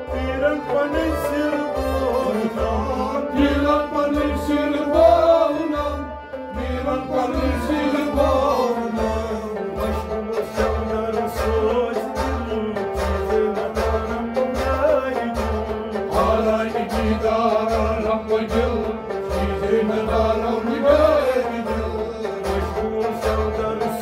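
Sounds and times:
bowed sarangi: 0.0 - 24.0
harmonium: 0.0 - 24.0
man singing: 0.0 - 24.0
plucked rabab: 0.0 - 24.0.

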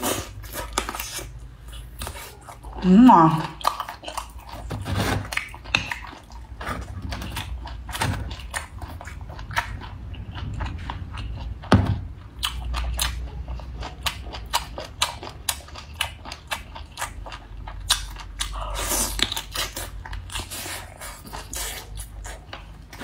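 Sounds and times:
person chewing seafood: 0.0 - 23.0.

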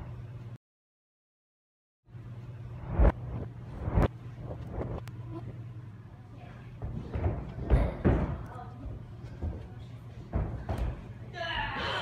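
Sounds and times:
steady low hum: 2.1 - 12.0.

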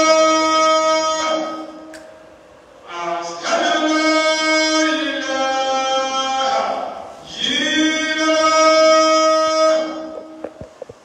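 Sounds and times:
man chanting recitation: 0.0 - 1.9, 2.8 - 10.5.

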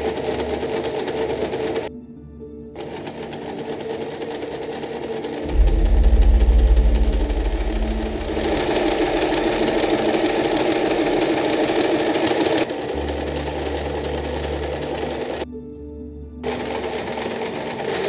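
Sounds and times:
electric sewing machine stitching: 0.0 - 1.9, 2.8 - 5.5, 8.5 - 15.4, 16.4 - 18.0.

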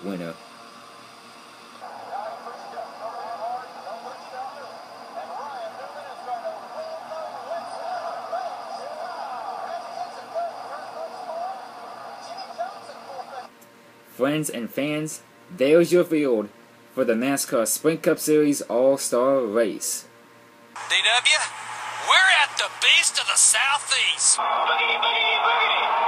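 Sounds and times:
crowd noise: 1.8 - 13.5, 20.8 - 26.0
overlapping voices: 1.8 - 13.5, 20.8 - 26.0.

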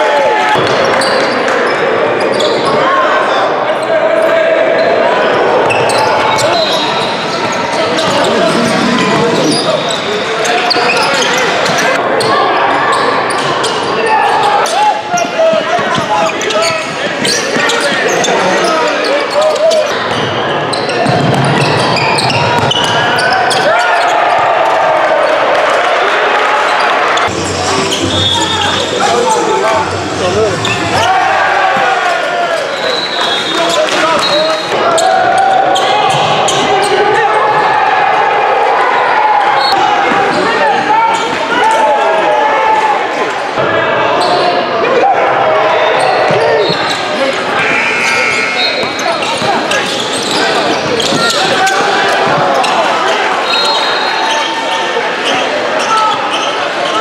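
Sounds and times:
shoe squeaks: 5.7 - 12.0, 15.2 - 24.1, 27.2 - 29.6, 46.0 - 52.8.

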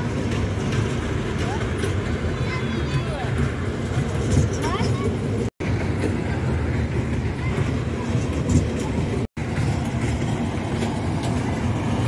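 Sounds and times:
faint children's voices: 6.0 - 9.7.

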